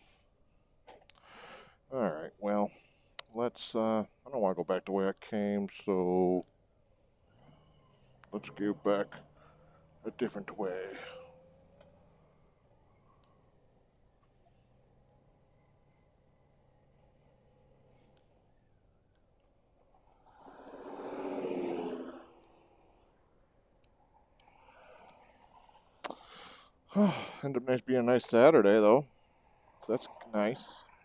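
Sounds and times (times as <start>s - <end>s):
low steady hum: 0.0s - 20.4s
vehicle passing: 7.3s - 18.2s, 20.1s - 23.0s.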